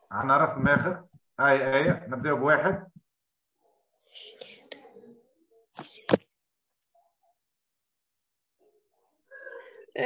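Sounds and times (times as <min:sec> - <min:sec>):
faint whispery voice: 0:03.6 - 0:06.3.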